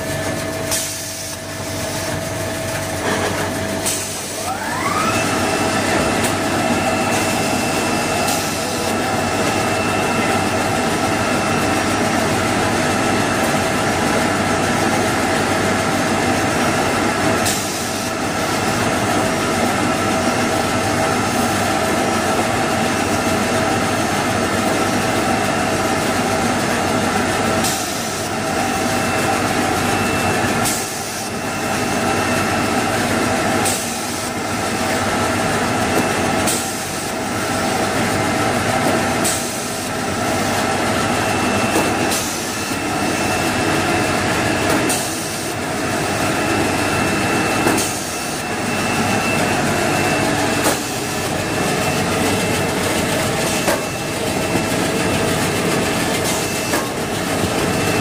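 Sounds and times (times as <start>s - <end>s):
machine running with steady whine: 0.0s - 58.0s
short sharp machine sound: 38.0s - 58.0s.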